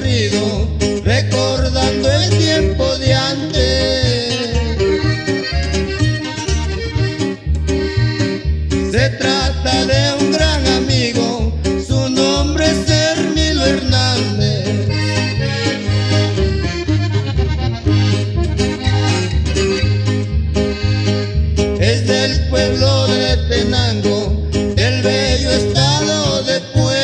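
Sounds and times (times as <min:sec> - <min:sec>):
bass notes: 0:00.0 - 0:27.0
button accordion melody: 0:00.0 - 0:27.0
strummed guitar: 0:00.0 - 0:27.0.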